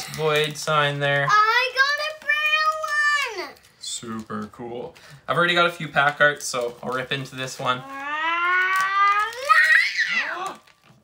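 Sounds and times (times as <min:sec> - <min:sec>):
child's wordless vocal sound: 0:07.8 - 0:10.6.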